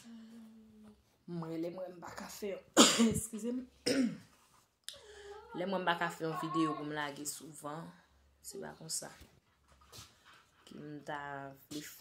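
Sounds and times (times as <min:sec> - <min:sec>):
woman talking: 0:01.3 - 0:03.8, 0:05.4 - 0:09.3, 0:10.7 - 0:12.0.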